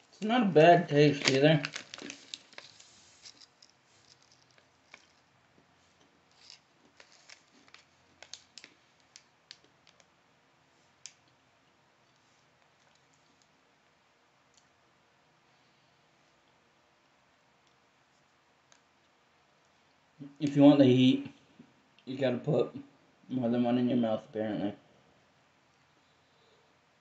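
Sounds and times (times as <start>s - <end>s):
almonds being chewed: 1.2s - 10.1s.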